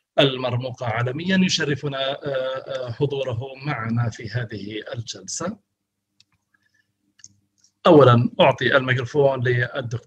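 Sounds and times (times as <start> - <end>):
man speaking: 0.2 - 5.6, 7.9 - 10.0
faint clicks: 6.2 - 7.8.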